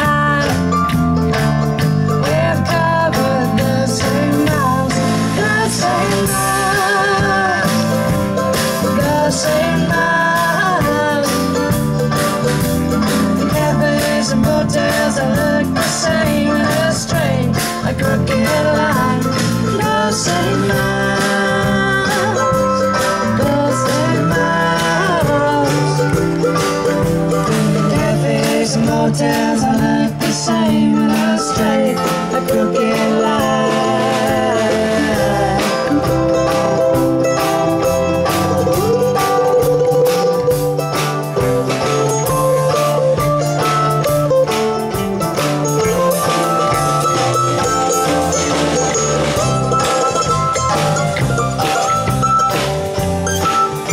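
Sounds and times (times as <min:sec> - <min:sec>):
woman singing: 0:00.0 - 0:00.9, 0:02.2 - 0:08.2, 0:08.8 - 0:11.8, 0:13.4 - 0:26.3, 0:27.4 - 0:36.8
bass guitar: 0:00.0 - 0:53.9
drum kit beat: 0:00.0 - 0:53.9
folk-rock band playing: 0:00.0 - 0:53.9
mandolin: 0:00.0 - 0:53.9
strummed acoustic guitar: 0:00.0 - 0:53.9.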